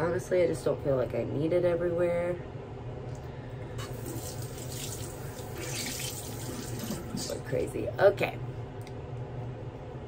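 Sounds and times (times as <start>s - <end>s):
steady low hum: 0.0s - 10.0s
tap water running into sink: 3.8s - 7.3s.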